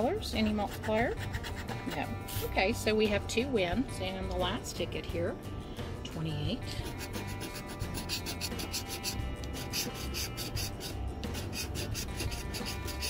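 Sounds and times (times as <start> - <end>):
background music: 0.0 - 13.0
scratching lottery ticket: 6.8 - 13.0.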